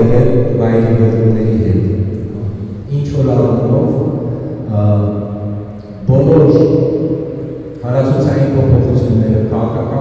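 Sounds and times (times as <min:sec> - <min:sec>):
man speaking into microphone: 0:00.0 - 0:10.0.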